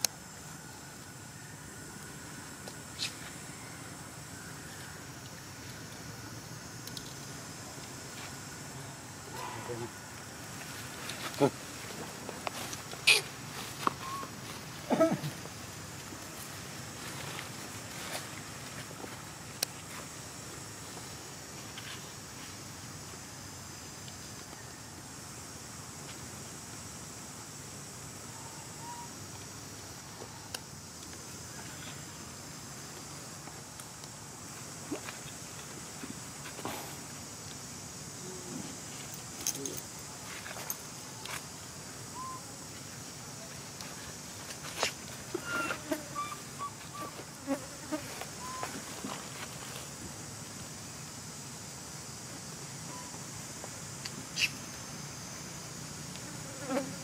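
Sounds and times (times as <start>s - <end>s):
insects droning: 0.0s - 57.0s
steady high hiss: 0.0s - 57.0s
high-pitched animal call: 45.4s - 47.2s.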